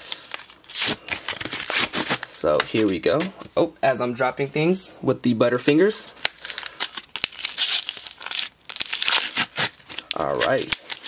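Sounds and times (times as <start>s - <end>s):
packaging tearing and crinkling: 0.0s - 2.9s, 6.1s - 11.0s.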